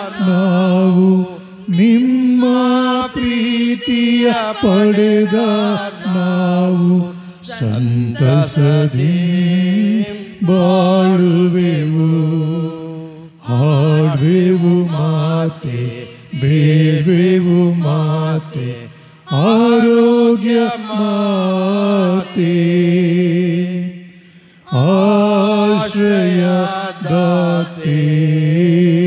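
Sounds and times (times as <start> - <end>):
person singing a hymn unaccompanied: 0.0 - 24.0, 24.6 - 29.0.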